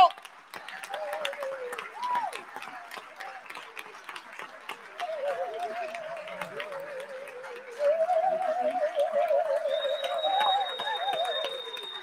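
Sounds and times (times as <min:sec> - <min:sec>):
audience applauding: 0:00.0 - 0:12.0
thin high whistle: 0:07.8 - 0:12.0.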